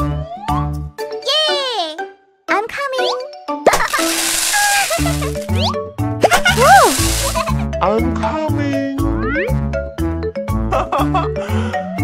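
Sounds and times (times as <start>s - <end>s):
children's background music: 0.0s - 12.0s
rushing splashing burst: 3.9s - 5.5s, 6.6s - 7.6s.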